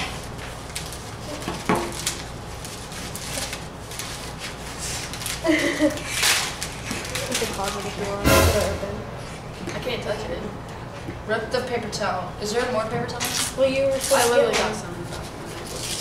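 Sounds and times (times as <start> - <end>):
foil packet crinkling: 0.1 - 8.2.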